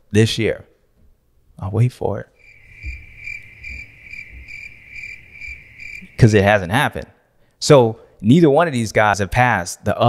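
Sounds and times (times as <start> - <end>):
crickets chirping: 2.4 - 6.7.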